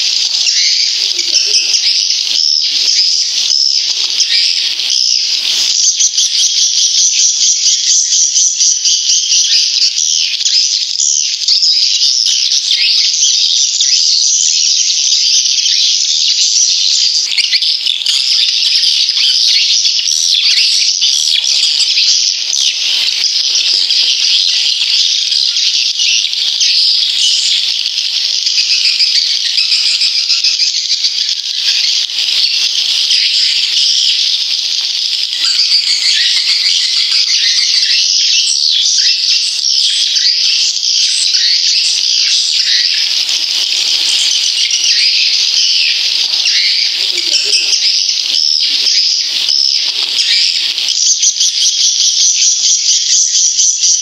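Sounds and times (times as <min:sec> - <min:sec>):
swiftlets twittering and chirping: 0:00.0 - 0:54.0.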